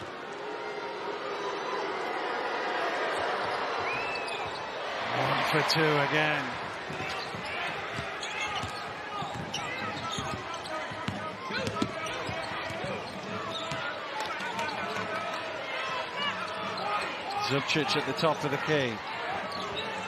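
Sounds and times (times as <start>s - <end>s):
arena crowd murmur: 0.0s - 20.0s
sneakers squeaking on floor: 6.9s - 15.2s.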